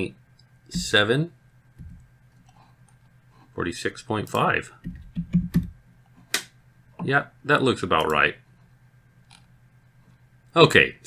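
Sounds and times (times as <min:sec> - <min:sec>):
keyboard typing: 0:04.8 - 0:05.7.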